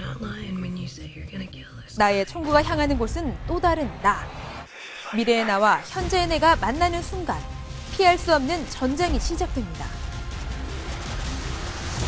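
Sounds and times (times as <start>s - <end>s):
softly spoken dialogue: 0.0s - 10.0s.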